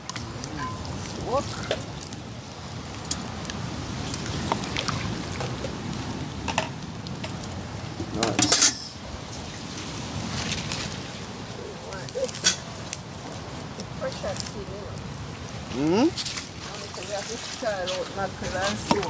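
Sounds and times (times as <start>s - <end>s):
outdoor background noise: 0.0s - 19.0s
metal bowl and pot clinking: 8.2s - 9.0s.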